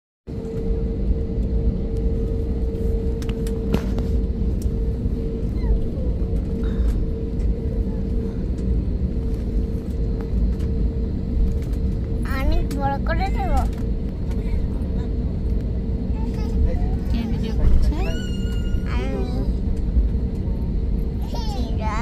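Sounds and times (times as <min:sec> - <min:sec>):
droning hum: 0:00.3 - 0:22.0
jet engines low rumble: 0:00.3 - 0:22.0.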